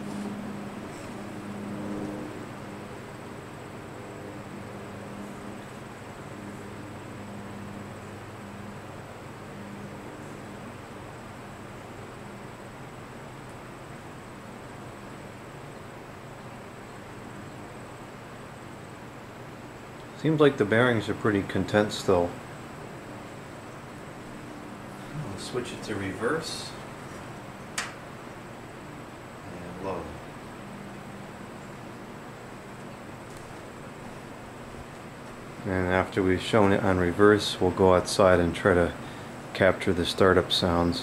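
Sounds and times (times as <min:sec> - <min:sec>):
fan blades air rush: 0:00.0 - 0:41.0
low fan hum: 0:00.0 - 0:41.0.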